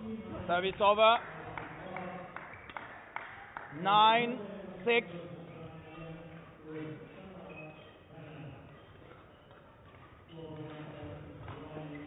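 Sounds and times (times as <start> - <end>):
voice in large hall: 0.0 - 12.0.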